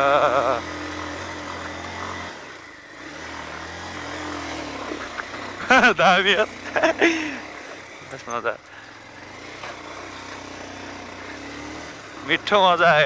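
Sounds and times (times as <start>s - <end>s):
dirt bike engine running: 0.0s - 13.0s.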